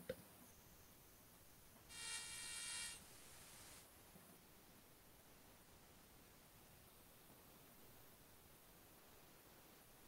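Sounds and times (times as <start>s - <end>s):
faint room hiss: 0.0s - 10.0s
buzzing tone: 1.9s - 3.8s.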